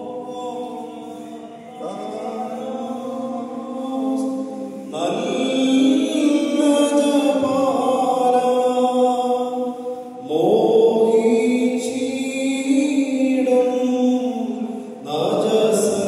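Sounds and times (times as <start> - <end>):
voices singing liturgical chant: 0.0 - 16.0.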